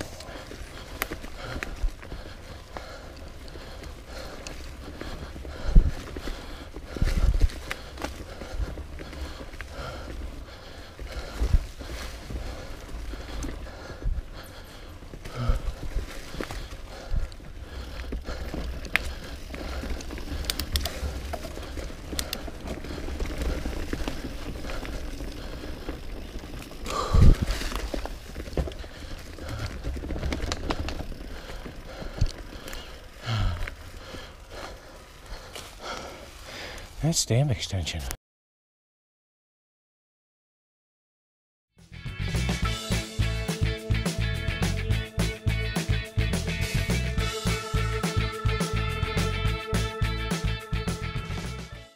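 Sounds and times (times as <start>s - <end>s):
bike rattling: 0.0s - 36.9s, 42.2s - 51.6s
tyres rolling over leaves and dirt: 0.0s - 37.0s.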